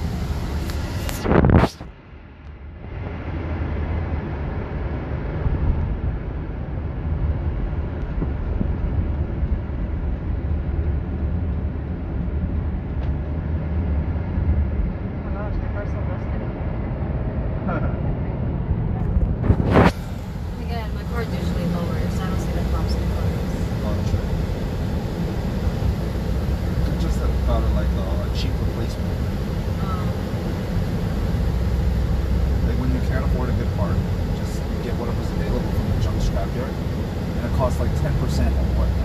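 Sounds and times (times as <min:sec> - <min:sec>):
car cabin road and engine rumble: 0:00.0 - 0:39.0.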